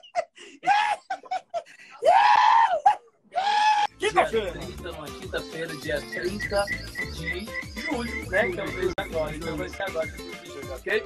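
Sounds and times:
person screaming: 0.6s - 1.1s, 2.0s - 3.9s.

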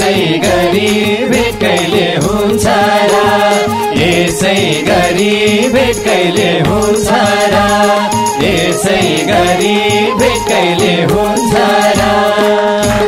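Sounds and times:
people singing folk song: 0.0s - 13.0s
steady drum beat: 0.0s - 13.0s.

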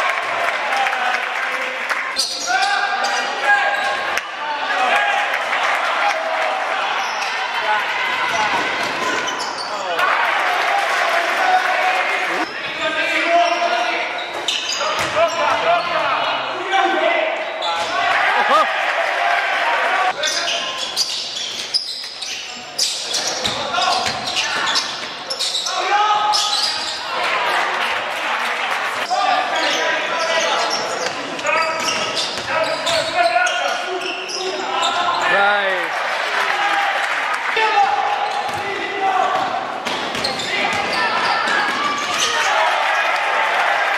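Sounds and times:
spectators and players voices: 0.0s - 43.9s
sneakers squeaking on wooden floor: 8.3s - 9.9s, 12.4s - 16.4s, 20.2s - 27.1s, 29.0s - 35.4s, 38.2s - 38.7s, 39.3s - 42.5s
basketball bouncing: 15.0s - 15.2s, 39.4s - 40.9s
basketball bouncing on wooden court: 15.0s - 15.3s, 23.4s - 25.0s, 39.3s - 42.2s.

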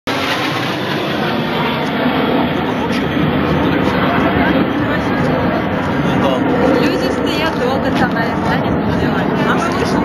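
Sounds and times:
jet aircraft roaring overhead: 0.1s - 10.0s.

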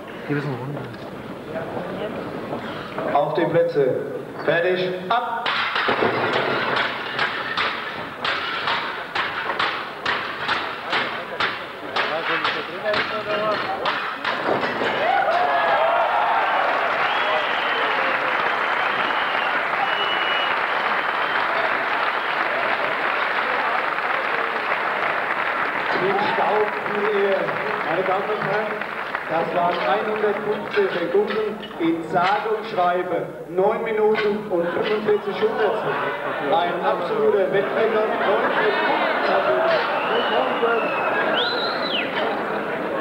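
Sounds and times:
clay roof tiles smashing: 5.5s - 15.5s
audience cheering and applauding: 14.8s - 30.8s, 38.3s - 43.0s.

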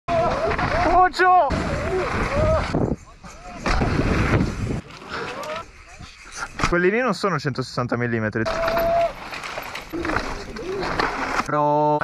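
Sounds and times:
bike tyres rolling on dirt: 0.1s - 5.8s, 8.4s - 11.5s
wind on microphone: 1.5s - 4.8s.

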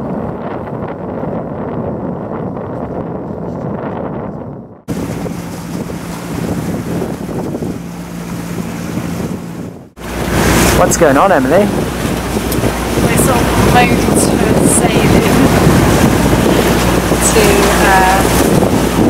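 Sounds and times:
rush of sea water: 0.0s - 3.6s, 4.8s - 19.0s
wind buffeting microphone: 0.0s - 19.0s.

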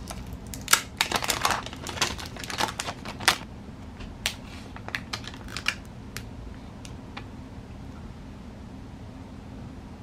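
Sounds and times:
plastic film peeling crackles: 0.0s - 3.4s, 4.2s - 6.3s.

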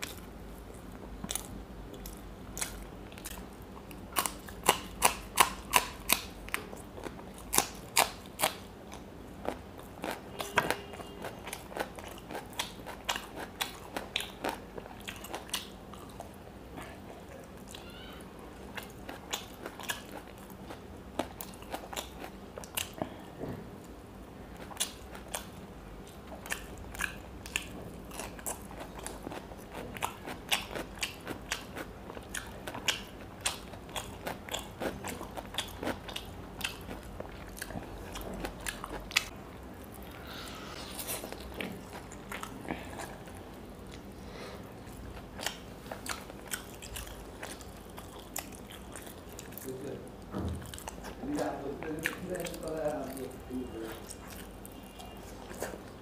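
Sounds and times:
person chewing fried fish: 0.0s - 56.0s.

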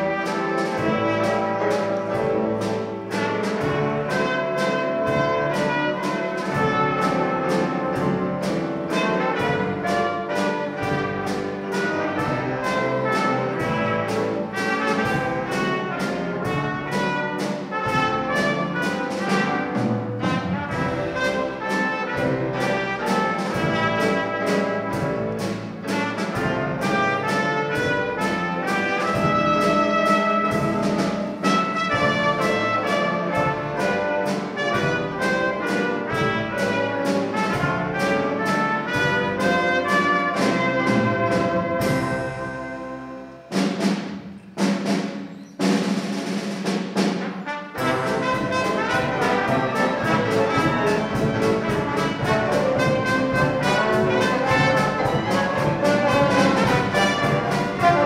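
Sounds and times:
dixieland jazz band playing: 0.0s - 58.0s.

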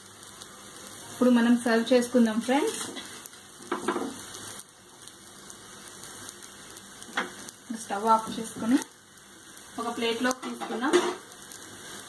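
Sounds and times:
omelette sizzling: 0.0s - 12.0s.

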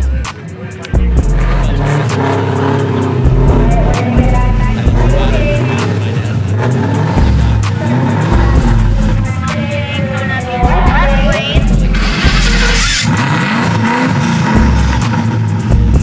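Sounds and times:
drag car engine running: 0.0s - 16.0s
music with heavy bass beat: 0.0s - 16.0s.

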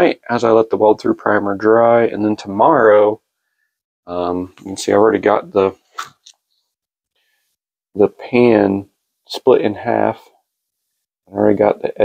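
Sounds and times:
man speaking: 0.0s - 3.2s, 4.1s - 5.8s, 8.0s - 10.3s, 11.3s - 12.0s.

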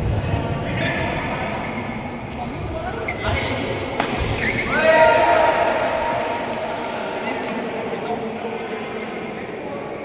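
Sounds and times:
sneakers squeaking on court: 4.2s - 4.7s.

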